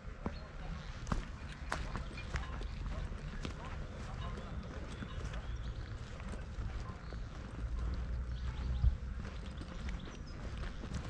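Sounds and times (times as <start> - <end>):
footsteps on dirt path: 0.0 - 11.0
wind rumble on microphone: 5.0 - 11.0.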